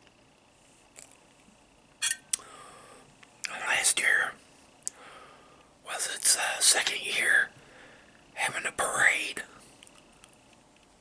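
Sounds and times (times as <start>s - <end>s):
man whispering: 3.4s - 4.4s, 5.8s - 7.6s, 8.3s - 9.6s.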